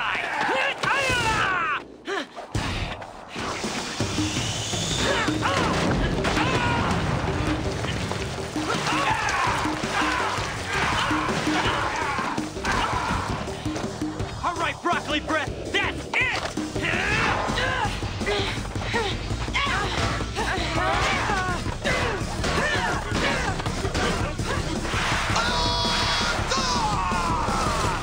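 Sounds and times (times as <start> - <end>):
synthesized action soundtrack music: 2.6 - 28.0.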